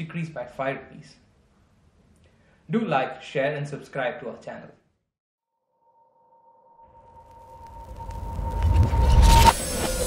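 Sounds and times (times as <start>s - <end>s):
low rumble and whoosh: 7.1s - 10.0s.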